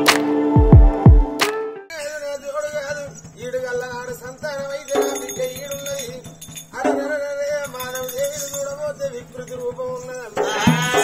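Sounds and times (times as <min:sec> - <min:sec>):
drum quick steady beat: 0:00.0 - 0:01.6
jingling metal: 0:02.0 - 0:11.0.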